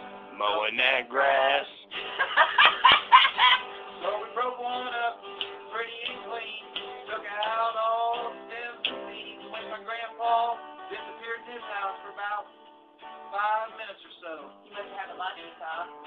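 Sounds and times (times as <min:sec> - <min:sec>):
guitar accompaniment: 0:00.0 - 0:16.0
man singing folk song: 0:00.3 - 0:02.0, 0:03.9 - 0:12.5, 0:13.2 - 0:16.0.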